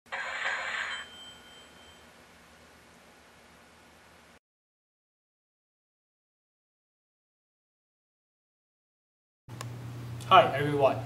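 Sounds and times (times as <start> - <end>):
bright burst of noise: 0.1 - 1.2
high ringing tones: 0.1 - 2.3.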